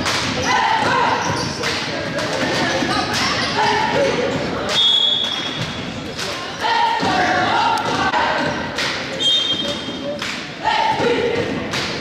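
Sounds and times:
crowd voices: 0:00.0 - 0:12.0
referee's whistle blast: 0:04.8 - 0:05.6, 0:09.2 - 0:09.8.

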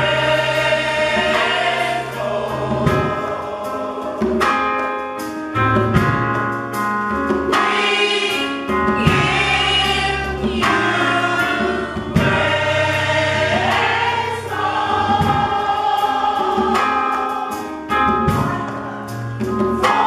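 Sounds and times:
choir singing in harmony: 0:00.0 - 0:06.0, 0:07.4 - 0:20.0
keyboard accompaniment: 0:00.0 - 0:20.0.

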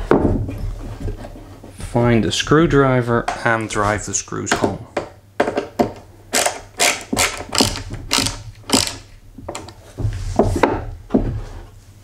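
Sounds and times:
ratchet screwdriver clicking: 0:06.4 - 0:09.0.

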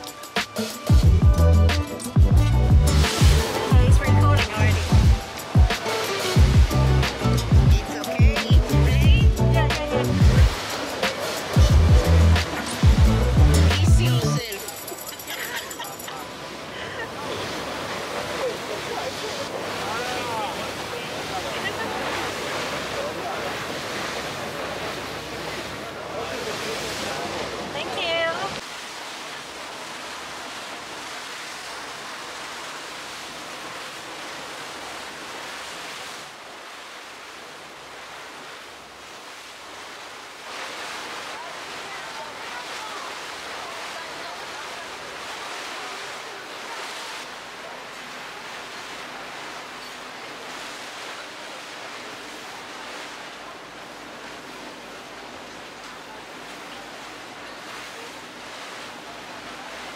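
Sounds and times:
water rushing along boat hull: 0:00.0 - 0:59.9.

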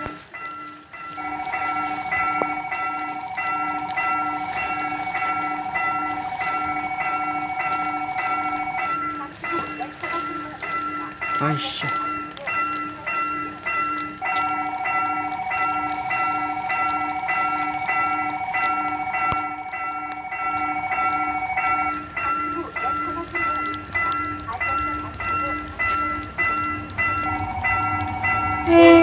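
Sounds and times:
level crossing warning bell ringing: 0:00.0 - 0:29.0
train horn long blast: 0:01.2 - 0:08.8, 0:28.6 - 0:29.0.

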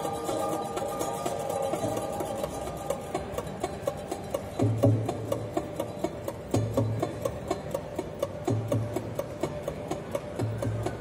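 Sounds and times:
mandolin ensemble playing softly: 0:00.0 - 0:11.0.

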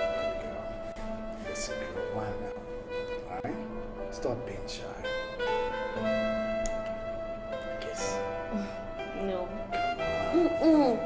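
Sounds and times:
soft background music: 0:00.0 - 0:11.0
person humming: 0:10.2 - 0:11.0.

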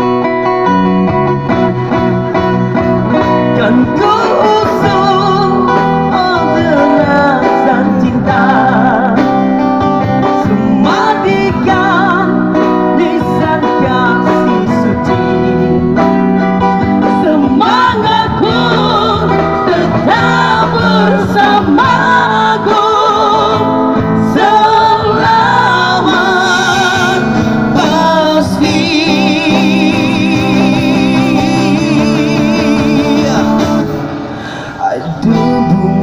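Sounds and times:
band with amplified guitars: 0:00.0 - 0:36.0
bass: 0:00.0 - 0:36.0
man and woman singing: 0:03.2 - 0:15.8, 0:17.0 - 0:36.0.

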